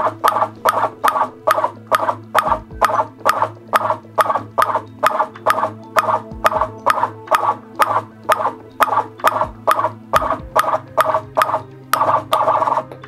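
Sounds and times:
ping-pong ball bouncing on paddle: 0.0 - 12.6
low steady hum: 0.0 - 13.0.

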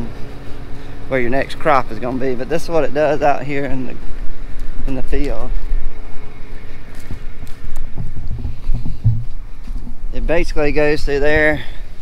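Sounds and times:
tractor engine running: 0.0 - 12.0
footsteps on loose soil: 0.1 - 10.3
wind rumble on microphone: 1.9 - 12.0
thuds: 7.9 - 10.0.

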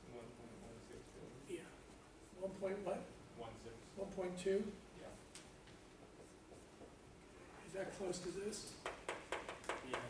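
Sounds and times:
marker writing on whiteboard: 5.9 - 7.0, 8.8 - 10.0.

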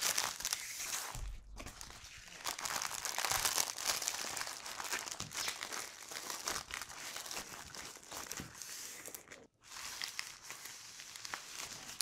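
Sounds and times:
plastic packaging crinkling: 0.0 - 12.0.

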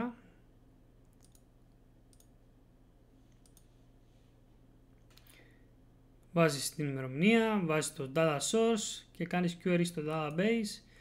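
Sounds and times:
low room hum: 0.0 - 11.0
computer mouse clicks: 1.0 - 1.5, 2.1 - 2.4, 3.3 - 3.8, 5.0 - 5.4.

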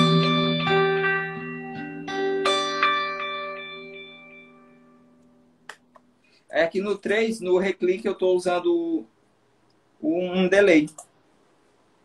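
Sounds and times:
electric guitar chord ringing: 0.0 - 5.6.

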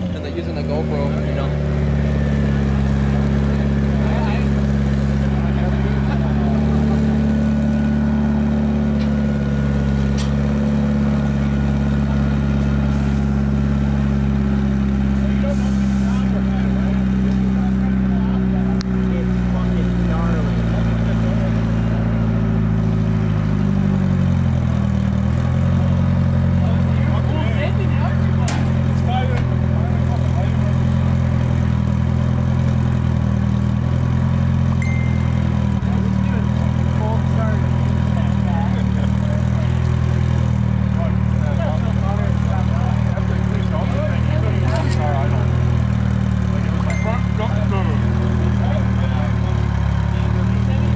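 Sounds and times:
faint voices: 0.0 - 10.5, 11.1 - 22.8, 26.3 - 33.0, 34.8 - 50.9
vehicle engine idling: 0.0 - 50.9.

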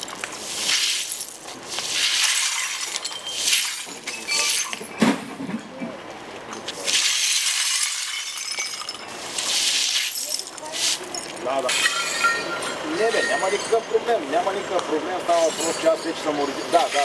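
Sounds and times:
broom sweeping broken glass: 0.0 - 5.0, 6.8 - 14.0, 15.3 - 17.0
glass clinking: 2.4 - 5.0, 7.2 - 14.2, 15.4 - 17.0.

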